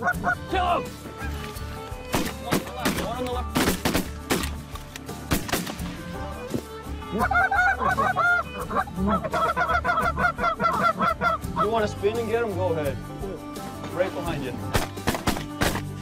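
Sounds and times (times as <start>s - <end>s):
geese honking: 0.0s - 2.6s, 6.4s - 11.9s
shotgun shots: 2.1s - 4.6s, 5.3s - 5.8s, 14.7s - 15.9s.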